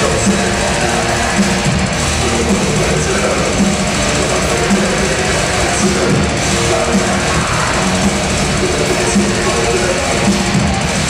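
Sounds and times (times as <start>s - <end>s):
distorted electric guitars: 0.0s - 11.0s
very fast drumming: 0.0s - 11.0s.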